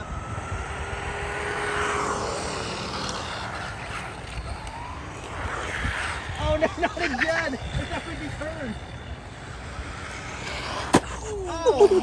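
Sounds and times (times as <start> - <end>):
toy car motor whine: 0.0 - 12.0
tyre noise on asphalt: 0.0 - 12.0.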